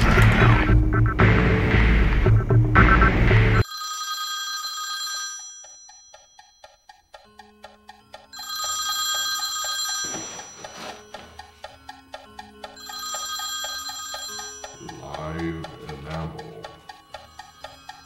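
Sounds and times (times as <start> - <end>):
landline telephone ringing: 3.6 - 6.8, 8.0 - 18.0
steady ticking: 5.4 - 18.0.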